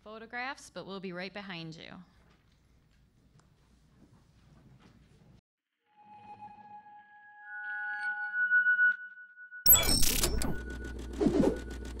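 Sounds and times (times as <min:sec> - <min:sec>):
low hum: 0:09.7 - 0:12.0
fast mechanical clicking: 0:09.8 - 0:12.0.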